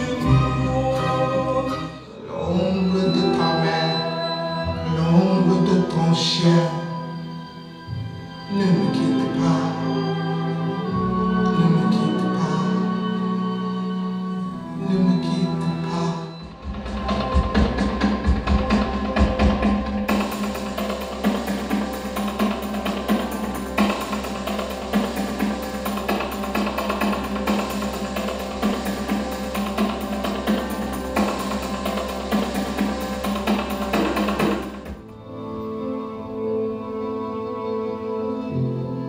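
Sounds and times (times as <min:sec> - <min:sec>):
sustained low bass: 0:14.7 - 0:35.1
music with fast percussive beat: 0:16.4 - 0:35.1.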